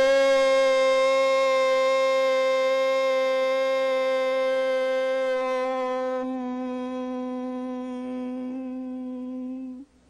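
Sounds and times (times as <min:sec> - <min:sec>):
man humming a long note: 0:00.0 - 0:09.9.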